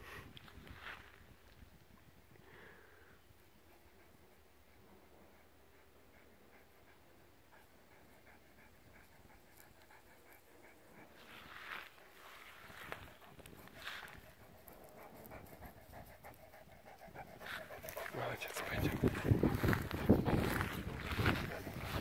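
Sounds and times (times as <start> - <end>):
dog panting: 3.3 - 22.0.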